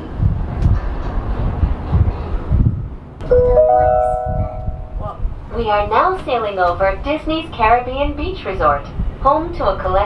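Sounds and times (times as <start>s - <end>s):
rising three-note chime: 3.2s - 5.1s.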